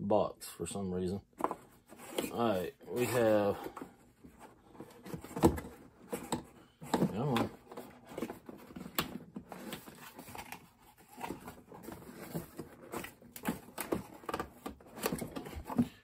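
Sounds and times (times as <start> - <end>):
rustling in a cardboard box: 1.4 - 16.0.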